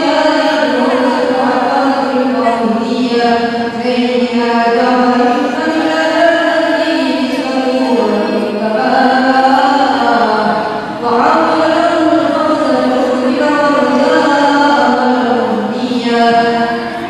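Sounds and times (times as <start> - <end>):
group chanting devotional song: 0.0 - 17.0.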